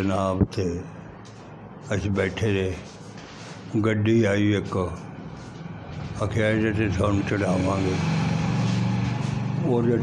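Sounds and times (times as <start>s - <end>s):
man speaking: 1.8s - 3.0s, 3.7s - 5.1s, 6.2s - 8.0s, 9.6s - 10.0s.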